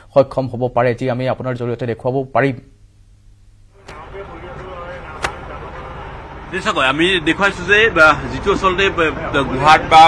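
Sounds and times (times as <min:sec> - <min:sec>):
faint voices: 0:03.8 - 0:09.5
low engine-like rumble: 0:03.8 - 0:10.0.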